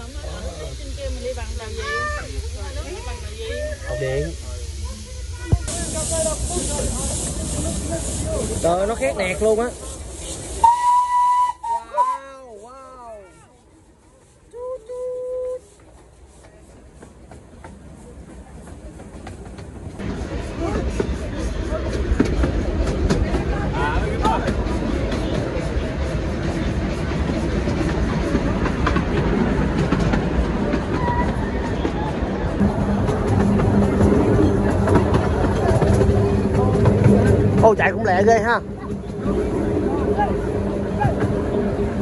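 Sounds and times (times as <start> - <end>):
miniature train rumbling: 0.0 - 42.0.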